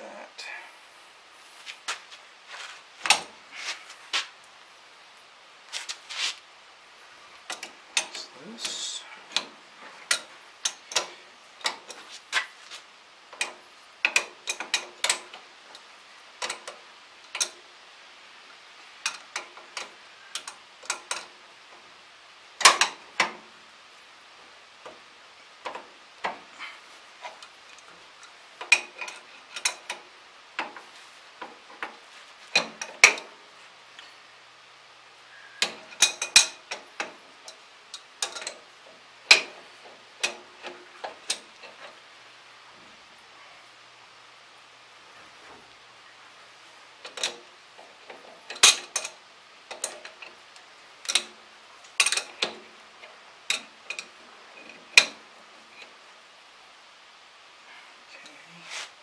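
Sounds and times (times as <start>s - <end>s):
wrench clicking on metal bolts: 7.5s - 9.5s, 10.1s - 12.0s, 13.4s - 15.4s, 16.4s - 17.6s, 35.6s - 38.6s, 39.3s - 39.6s, 48.5s - 50.4s, 51.0s - 51.4s, 52.0s - 52.6s.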